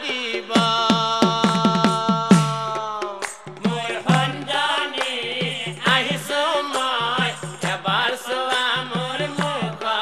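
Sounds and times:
voices singing chanted verse: 0:00.0 - 0:10.0
struck drums beating: 0:00.4 - 0:10.0.

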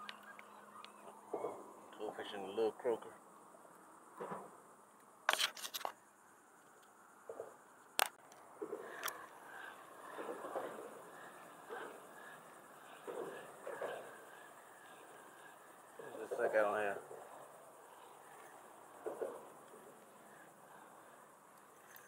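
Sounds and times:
sharp clicks of fishing rig: 0:05.3 - 0:06.0.

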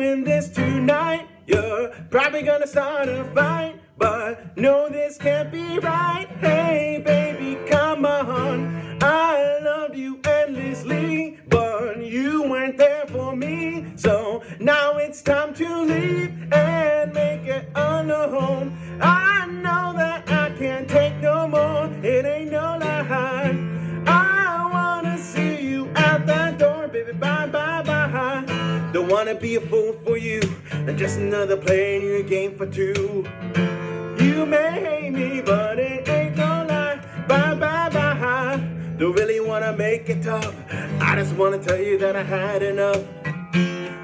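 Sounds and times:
man singing: 0:00.0 - 0:44.0
strummed acoustic guitar: 0:00.0 - 0:44.0.

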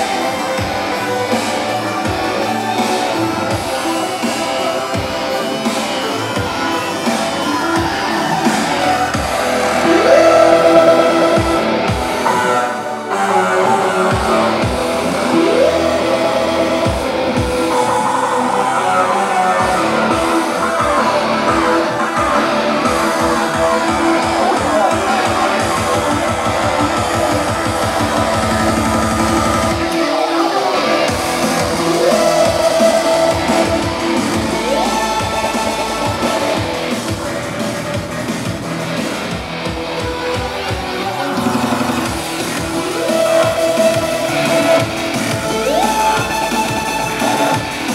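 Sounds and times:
band playing electronic rock: 0:00.0 - 0:47.9
sustained synthesizer tones: 0:00.0 - 0:47.9.

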